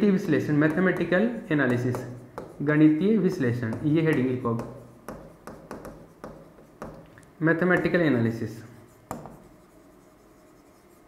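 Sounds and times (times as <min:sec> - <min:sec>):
pen tapping on screen: 0:00.6 - 0:02.6, 0:03.4 - 0:07.1, 0:09.1 - 0:09.4
pen rubbing on screen: 0:08.7 - 0:11.0.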